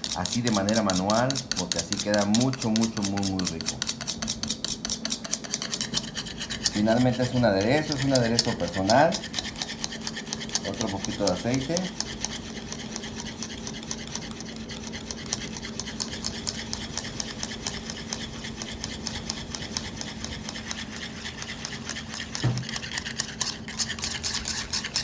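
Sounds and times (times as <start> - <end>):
whisk beating in a bowl: 0.0 - 25.0.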